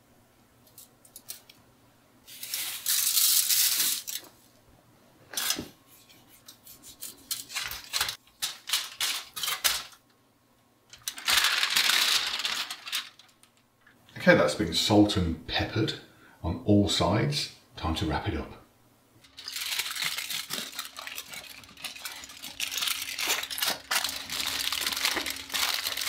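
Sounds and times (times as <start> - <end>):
rubbing clicks and rustles on foil: 2.3 - 4.3, 5.3 - 10.0, 10.9 - 13.9, 19.2 - 26.0.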